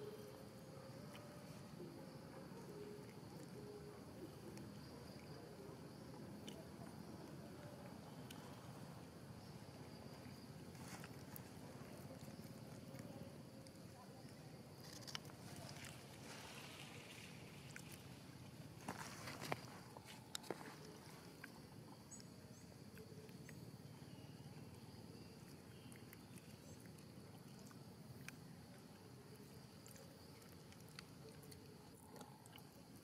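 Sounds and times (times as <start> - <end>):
outdoor background hiss: 0.0 - 33.0.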